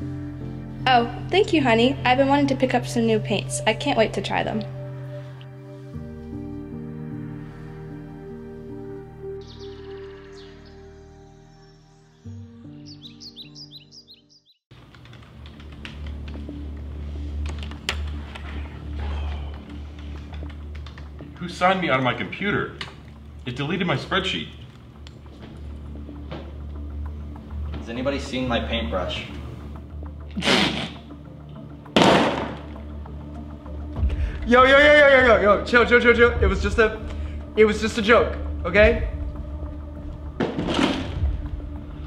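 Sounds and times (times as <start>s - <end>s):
background music: 0.0s - 42.0s
bird chirping rapidly: 9.4s - 14.6s.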